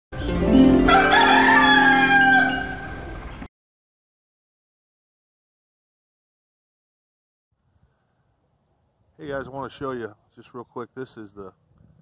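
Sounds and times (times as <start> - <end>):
rooster crowing: 0.8 - 3.1.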